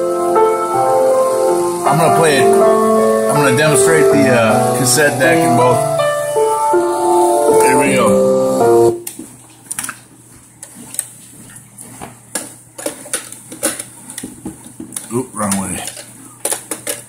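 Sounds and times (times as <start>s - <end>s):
music from cassette boombox: 0.0s - 9.0s.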